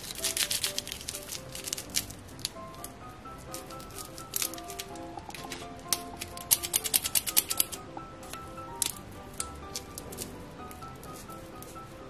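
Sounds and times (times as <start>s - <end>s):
plastic wrapper crinkling: 0.0s - 7.8s
soft background music: 0.0s - 12.0s.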